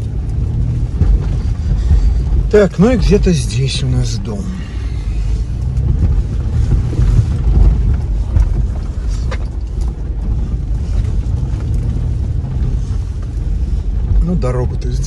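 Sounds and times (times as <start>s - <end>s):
engine and tyre rumble: 0.0s - 15.0s.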